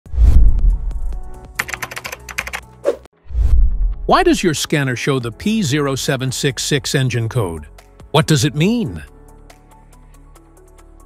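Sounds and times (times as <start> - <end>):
keyboard typing clicks: 1.6 - 2.7.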